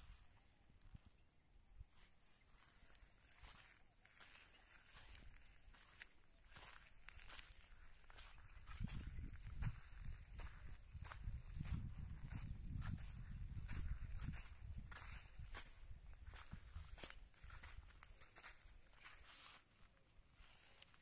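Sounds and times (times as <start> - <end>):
footsteps scuffing on dry dirt: 1.8 - 21.0
low rumble on microphone: 8.7 - 15.6.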